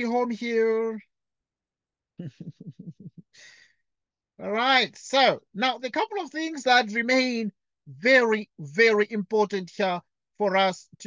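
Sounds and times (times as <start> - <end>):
man laughing quietly: 2.2 - 3.4.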